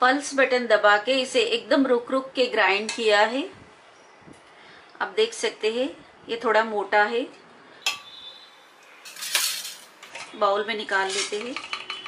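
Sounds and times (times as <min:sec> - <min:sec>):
spoon clinking on metal jar: 0:09.1 - 0:09.9.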